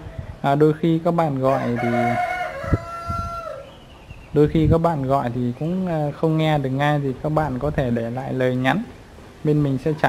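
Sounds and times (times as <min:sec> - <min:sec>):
rooster crowing: 0:01.4 - 0:03.8.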